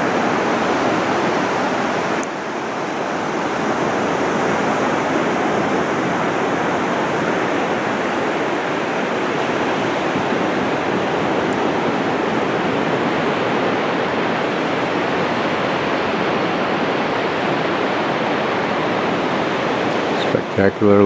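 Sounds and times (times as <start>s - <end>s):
ocean surf breaking on beach: 0.0s - 21.0s.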